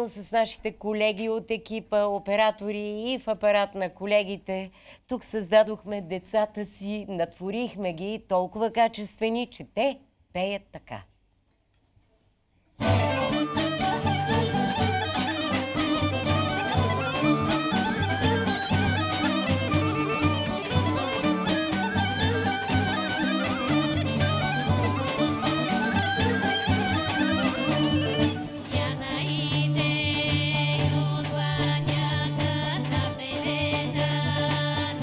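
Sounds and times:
fast folk dance melody: 12.8 - 35.0.

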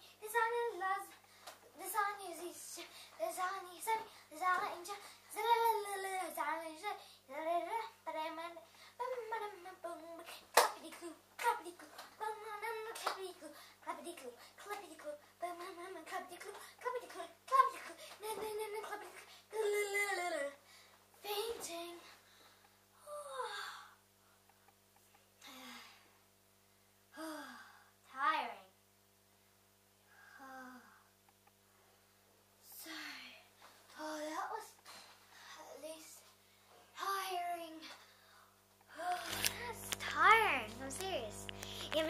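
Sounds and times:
girl singing unaccompanied: 0.0 - 20.6, 21.2 - 22.2, 39.0 - 42.0
child sighing: 27.1 - 27.9.

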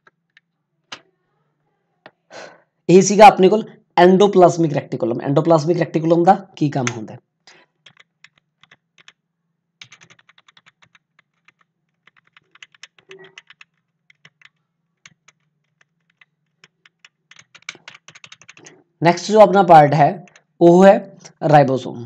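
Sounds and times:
computer keys clicking: 6.8 - 9.2, 9.8 - 18.8, 20.2 - 20.6.

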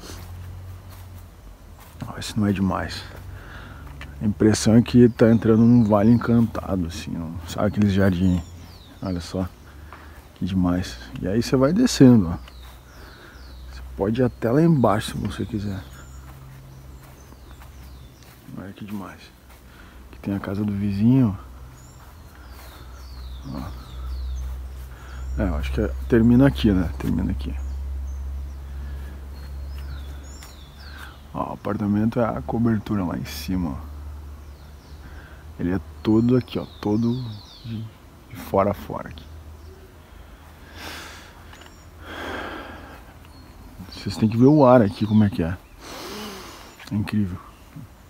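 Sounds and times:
small birds whistling: 0.0 - 33.8, 34.4 - 48.0
person breathing in: 3.3 - 4.0, 40.1 - 43.2, 45.8 - 46.8
person breathing out: 45.8 - 46.8.

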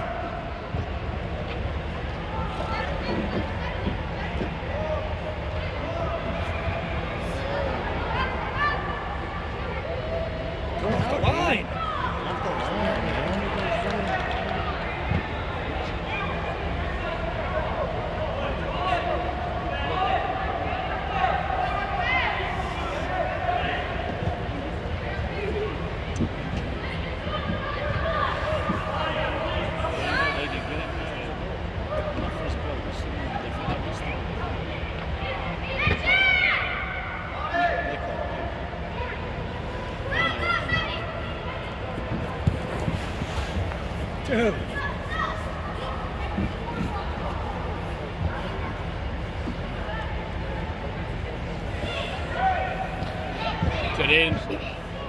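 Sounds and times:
loud shout: 35.7 - 38.2.

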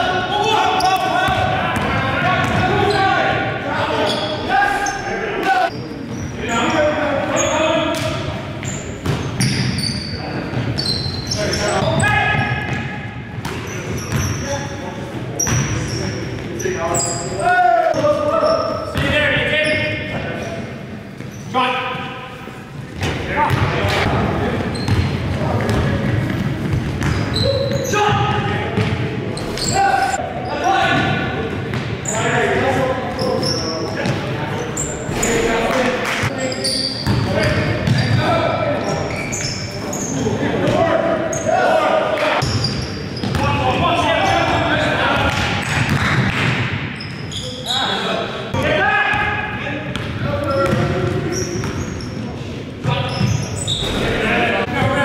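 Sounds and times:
players calling and shouting: 0.0 - 55.0.

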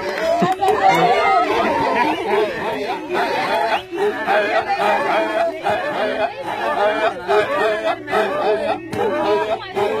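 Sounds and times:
group of voices chanting: 0.0 - 10.0.

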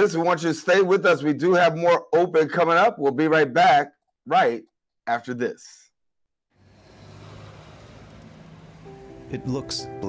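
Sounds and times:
traffic rumble: 6.6 - 10.0
music: 8.5 - 10.0.

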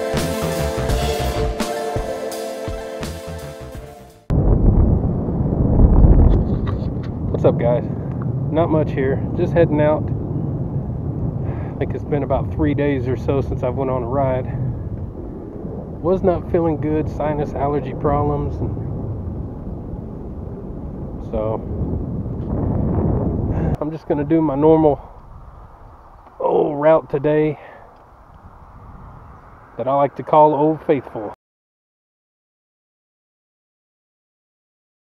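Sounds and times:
wind buffeting microphone: 4.3 - 31.3.

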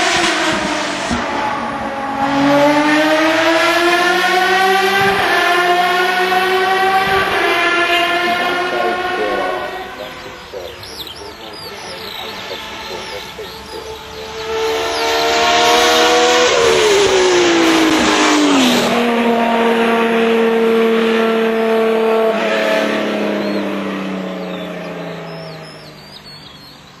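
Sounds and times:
racing car engine at high revs: 0.0 - 27.0.

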